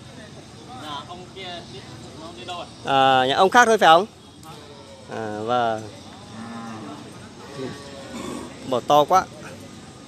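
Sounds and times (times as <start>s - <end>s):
market voices: 0.0s - 10.0s.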